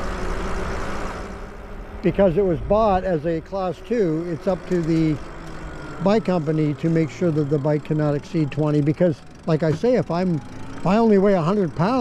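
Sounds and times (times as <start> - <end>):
electric motor hum: 0.0 - 12.0
wind rushing over microphone: 2.4 - 3.5.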